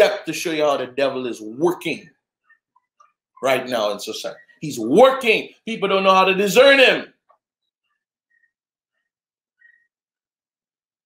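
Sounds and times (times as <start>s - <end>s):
faint high-pitched chirps: 2.1s - 4.9s, 7.5s - 10.3s.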